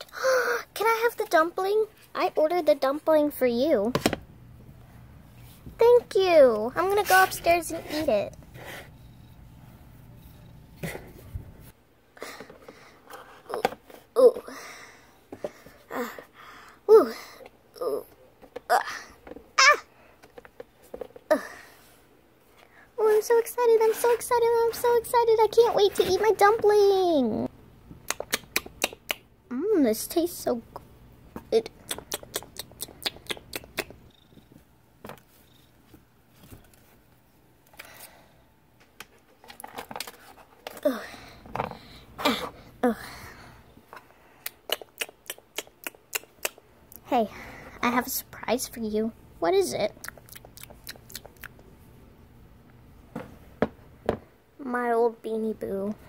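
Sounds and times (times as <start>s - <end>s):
child saying ooh: 19.6s - 19.9s.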